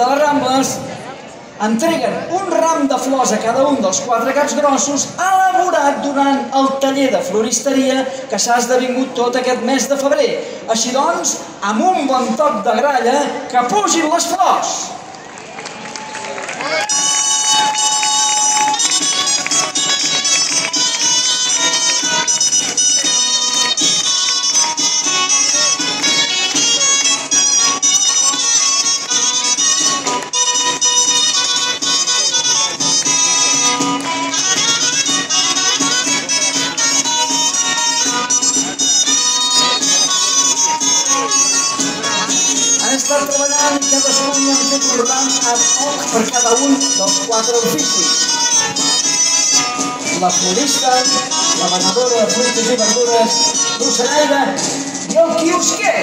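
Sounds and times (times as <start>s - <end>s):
shawm playing a melody: 16.8s - 55.9s.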